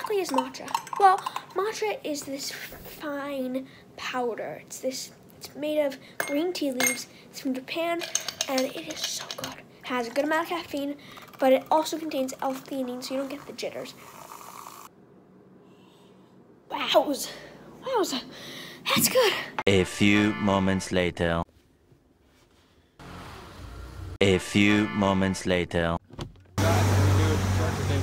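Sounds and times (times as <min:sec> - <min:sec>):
milk frother whirring: 0:12.6 - 0:14.9
loud steady noise with low hum: 0:26.6 - 0:28.0.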